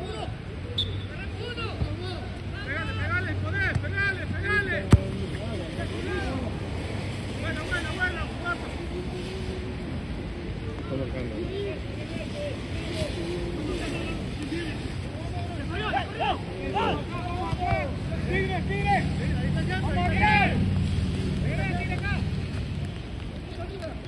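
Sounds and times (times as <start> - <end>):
players shouting in distance: 11.4 - 20.8.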